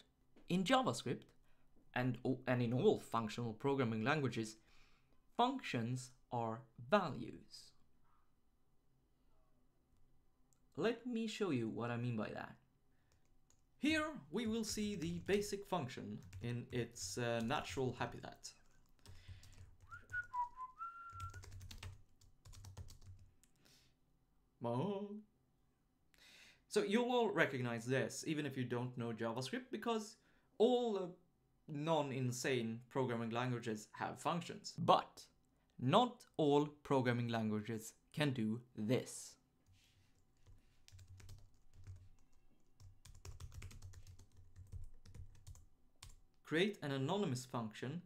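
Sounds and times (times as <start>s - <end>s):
keyboard typing: 14.4s - 17.8s, 18.6s - 19.9s, 21.1s - 23.6s, 40.4s - 46.2s
person whistling a tune: 19.8s - 21.5s.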